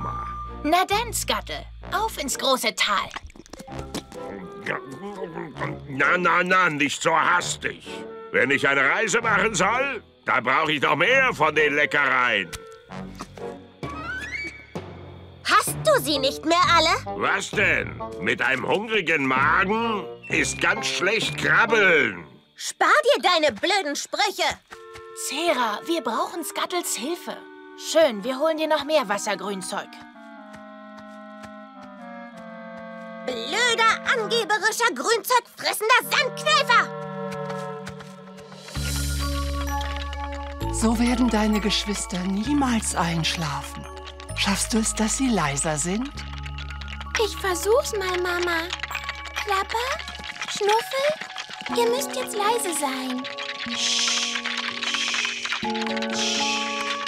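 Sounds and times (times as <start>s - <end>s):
soft background music: 0.0s - 22.3s, 24.7s - 35.0s, 35.9s - 55.0s, 55.6s - 57.0s.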